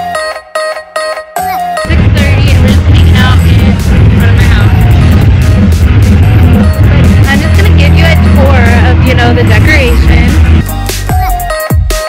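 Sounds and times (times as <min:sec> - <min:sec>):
music with heavy bass and beat: 0:00.0 - 0:12.0
person speaking over music: 0:01.9 - 0:05.2, 0:07.1 - 0:10.6.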